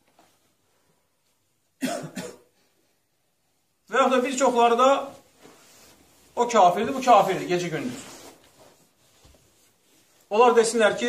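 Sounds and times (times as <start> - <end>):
person coughing: 1.8 - 2.7.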